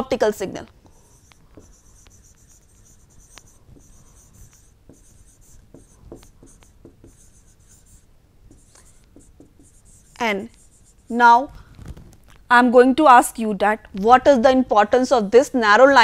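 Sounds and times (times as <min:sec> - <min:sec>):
stylus scratching on pen tablet: 0:00.9 - 0:11.4.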